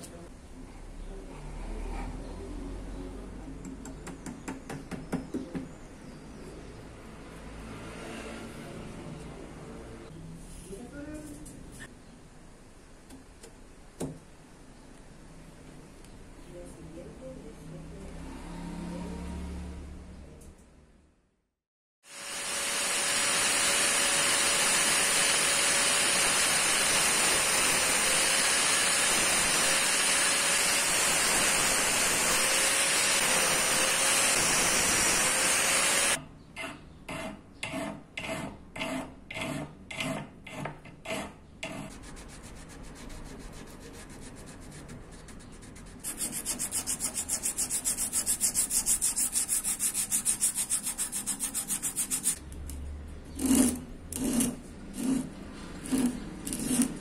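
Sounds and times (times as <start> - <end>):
hand file rasping on wood: 37.1 - 44.5, 46.0 - 52.4, 53.4 - 57.0
sandpaper sanding wood: 41.9 - 52.4.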